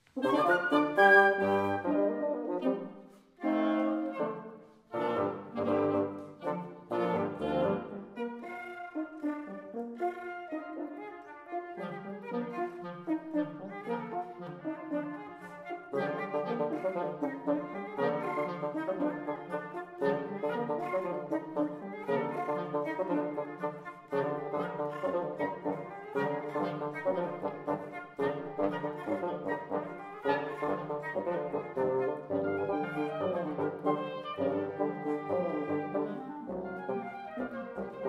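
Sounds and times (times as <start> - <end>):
woodwind quintet playing: 0.0 - 38.0.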